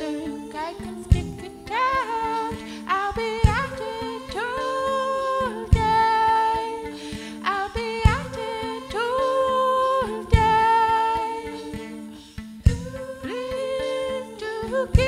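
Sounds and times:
woman singing long notes: 0.0 - 12.1, 12.7 - 15.0
sharp beat: 12.7 - 13.0.

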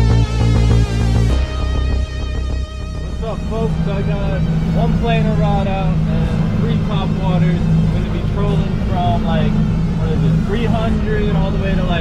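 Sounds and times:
outboard motor running: 0.0 - 12.0
man talking: 3.2 - 12.0.

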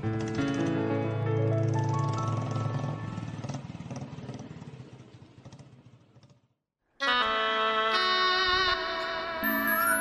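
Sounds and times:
motorcycle engine running: 1.5 - 6.6.

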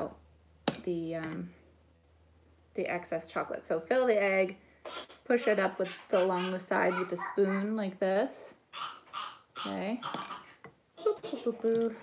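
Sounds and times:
spoon clicking and scraping: 10.1 - 10.4.

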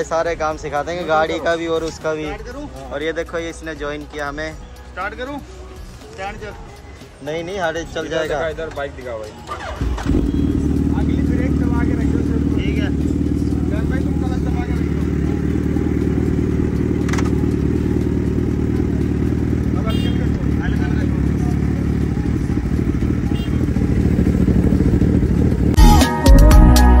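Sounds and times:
motorcycle engine idling: 9.4 - 25.8.

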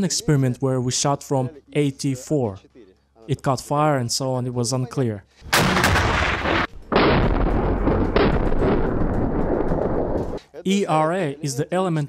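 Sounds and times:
launcher firing blasts: 5.5 - 10.4
warhead impact boom: 5.5 - 10.4.

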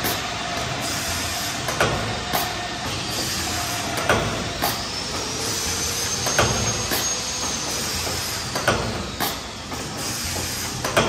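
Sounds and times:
machine mechanical hiss: 0.0 - 11.0
sharp mechanical knocks: 1.7 - 3.2, 3.8 - 5.3, 6.2 - 11.0.

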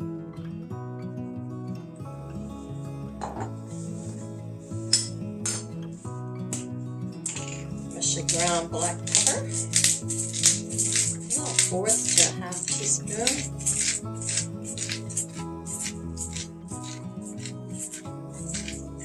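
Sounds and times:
background music: 0.0 - 19.0
pepper mill grinding: 4.8 - 19.0.

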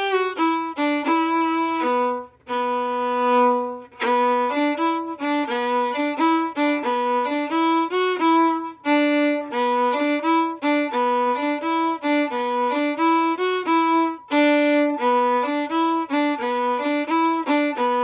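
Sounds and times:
solo fiddle tune: 0.0 - 18.0.

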